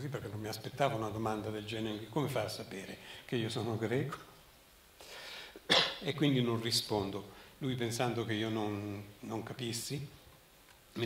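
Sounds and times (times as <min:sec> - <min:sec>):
man coughing into microphone: 0:05.7 - 0:06.1.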